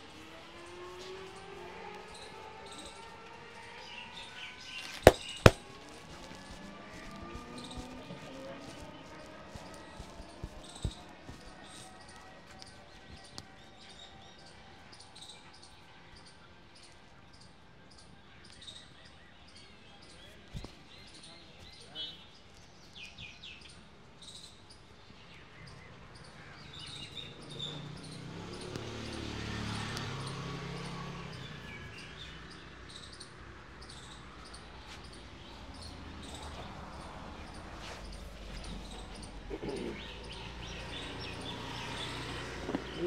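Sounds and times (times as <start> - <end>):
hand smacks on back: 5.0 - 5.6.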